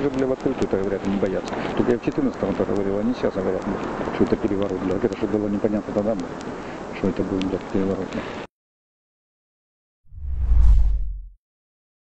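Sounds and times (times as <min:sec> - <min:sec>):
deep whoosh with low rumble: 0:10.1 - 0:11.4.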